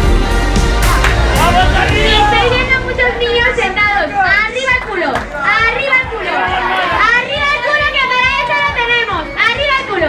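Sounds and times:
crowd shouting and cheering: 0.0 - 10.0
music playing: 0.0 - 10.0.

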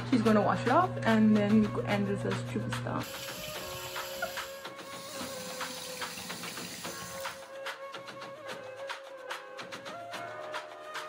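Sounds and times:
background music with light beat: 0.0 - 11.0.

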